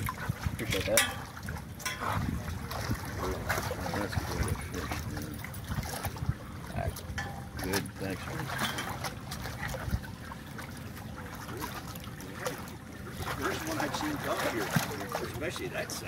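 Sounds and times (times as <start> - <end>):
short splashes: 0.0 - 16.0
water sloshing and lapping: 0.0 - 16.0.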